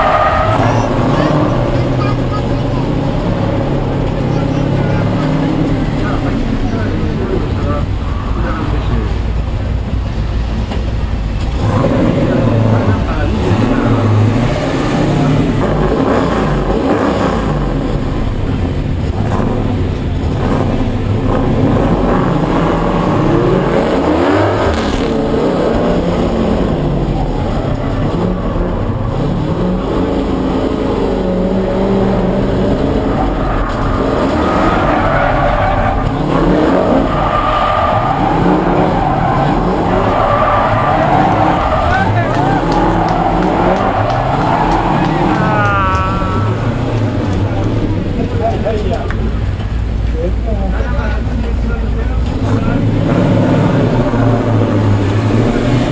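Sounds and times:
car engine revving: 0:00.0 - 0:55.9.

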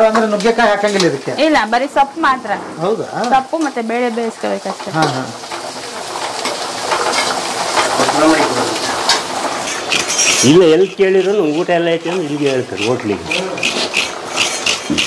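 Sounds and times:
onions sizzling in a pan: 0:00.0 - 0:15.0
ladle scraping a pan: 0:04.7 - 0:15.0.

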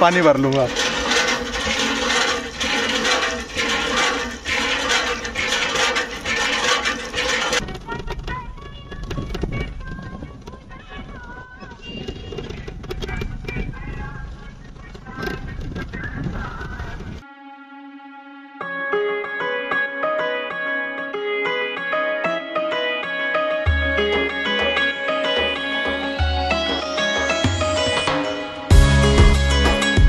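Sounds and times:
hand pump strokes: 0:00.0 - 0:17.2
background music: 0:17.2 - 0:30.0.

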